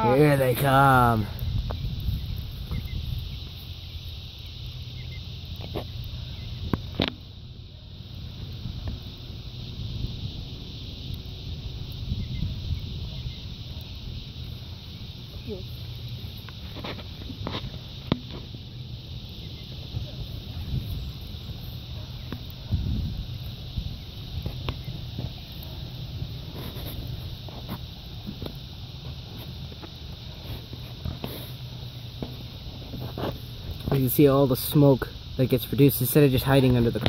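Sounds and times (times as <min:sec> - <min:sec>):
fire crackling and popping: 0:00.0 - 0:37.0
steady high hiss: 0:00.0 - 0:37.0
steady low rumble: 0:01.2 - 0:37.0.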